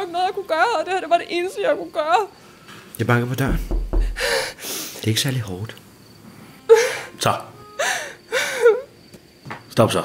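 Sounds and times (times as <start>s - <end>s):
person gasping: 4.0s - 4.8s.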